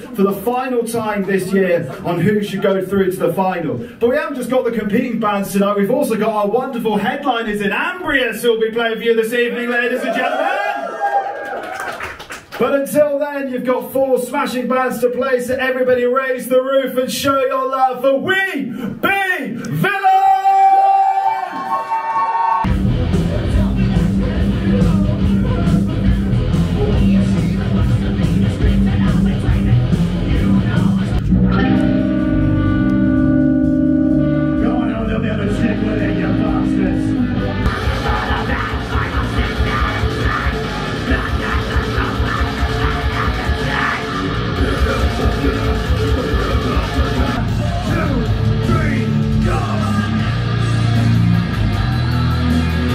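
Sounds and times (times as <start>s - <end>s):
metal band playing loudly: 22.7s - 52.9s.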